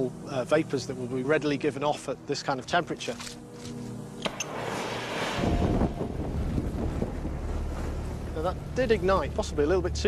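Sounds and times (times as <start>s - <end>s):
flame rushing and burning: 3.5s - 9.3s.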